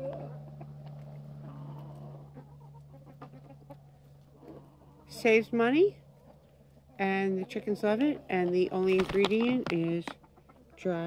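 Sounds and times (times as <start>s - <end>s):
chickens clucking softly: 0.0s - 5.4s, 9.8s - 11.0s.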